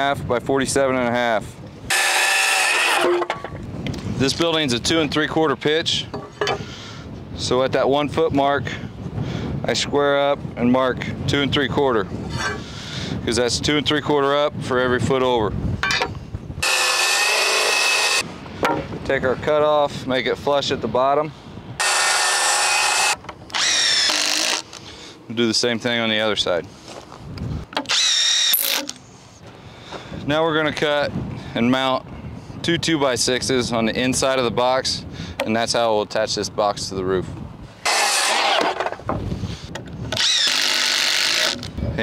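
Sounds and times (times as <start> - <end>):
drill motor whirring: 1.9 - 3.2, 16.6 - 18.2, 21.8 - 24.9, 27.9 - 29.0, 37.8 - 38.8, 40.1 - 41.7
circular saw cutting board: 1.9 - 3.4, 16.6 - 18.2, 21.8 - 24.7, 37.9 - 39.0.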